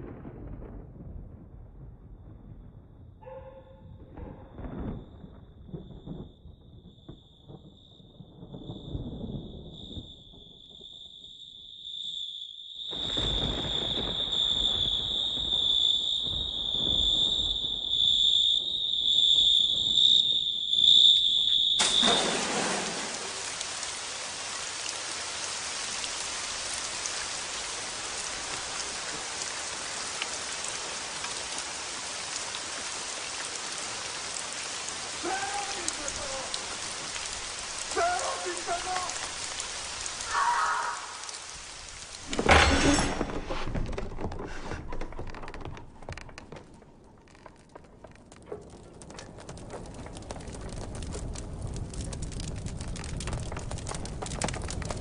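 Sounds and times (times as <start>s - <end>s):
rain-like hiss: 12.8s - 43.9s, 47.3s - 55.0s.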